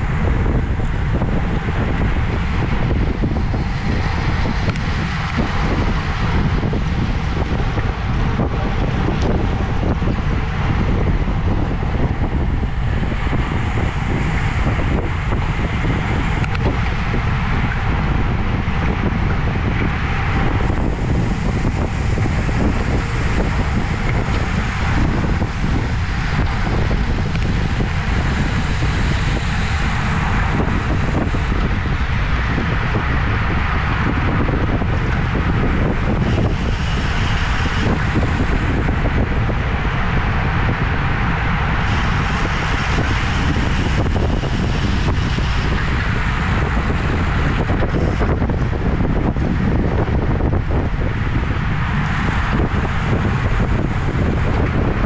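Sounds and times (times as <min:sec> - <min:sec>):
tyre road noise: 0:00.0 - 0:55.0
wind rushing over microphone: 0:00.0 - 0:55.0.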